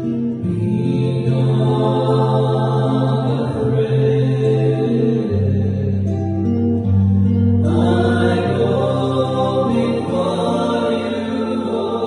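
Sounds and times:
acoustic guitar: 0.0 - 12.0
voices singing: 0.4 - 6.6, 7.6 - 12.0.

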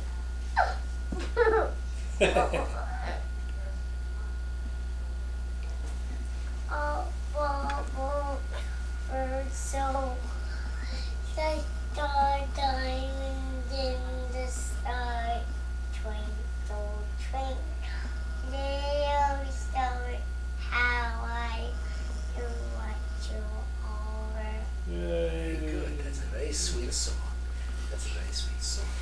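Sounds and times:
young child singing: 6.7 - 10.2, 10.9 - 24.7.

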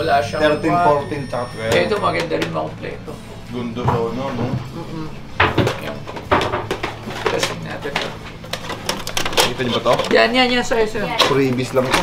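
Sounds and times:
plastic cases clacking: 5.4 - 10.3, 11.1 - 12.0.

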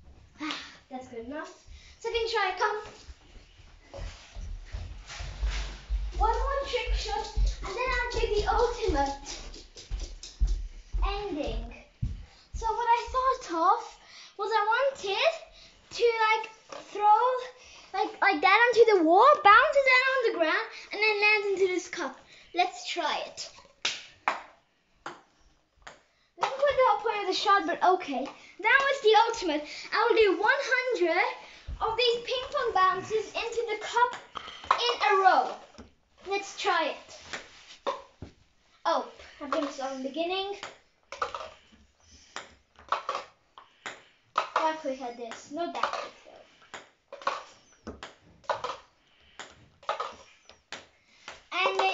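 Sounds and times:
child singing wordless tune: 6.2 - 9.4, 26.7 - 34.1
ping-pong ball bouncing: 24.3 - 26.7, 34.1 - 35.6, 39.5 - 39.8, 40.6 - 41.7, 42.3 - 51.9.

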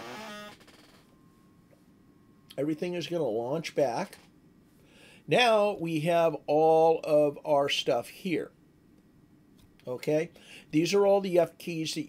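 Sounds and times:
faint thin steady tone: 0.9 - 5.3
man talking: 2.5 - 4.3, 5.3 - 8.6, 9.8 - 12.0.

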